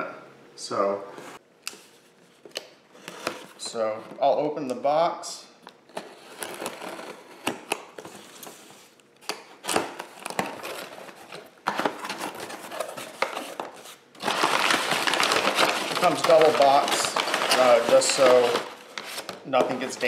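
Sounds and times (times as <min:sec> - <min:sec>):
packing paper crinkling: 0:09.6 - 0:20.0.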